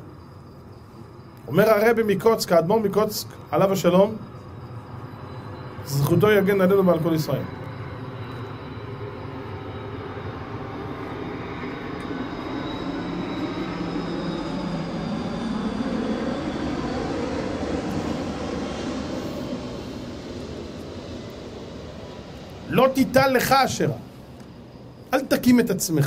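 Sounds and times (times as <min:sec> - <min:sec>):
aircraft passing rumble: 0:00.0 - 0:26.0.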